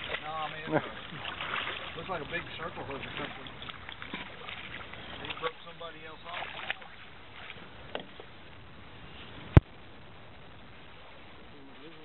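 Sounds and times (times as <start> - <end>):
man talking: 0.0 - 1.1, 1.8 - 3.6.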